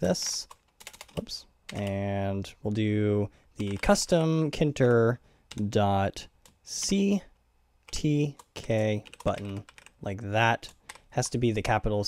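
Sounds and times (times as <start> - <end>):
man speaking: 0.0 - 0.5, 1.1 - 7.3, 7.9 - 12.0
computer keyboard typing: 0.4 - 2.1, 3.6 - 4.1, 5.5 - 5.7, 7.9 - 10.0, 10.6 - 11.1.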